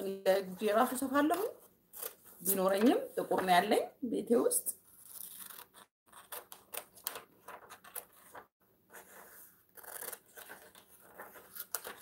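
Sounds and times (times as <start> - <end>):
woman speaking: 0.0 - 1.6, 2.4 - 4.8
scissors cutting paper: 4.9 - 8.4, 9.7 - 12.0.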